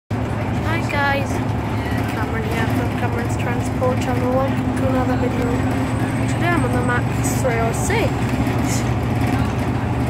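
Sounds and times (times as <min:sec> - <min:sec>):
bus engine droning: 0:00.1 - 0:10.0.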